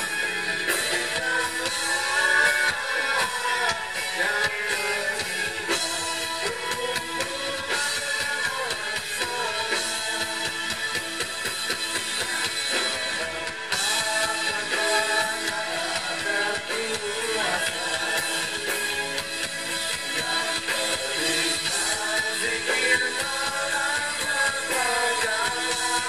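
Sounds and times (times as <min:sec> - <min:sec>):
live band with singers: 0:00.0 - 0:26.0.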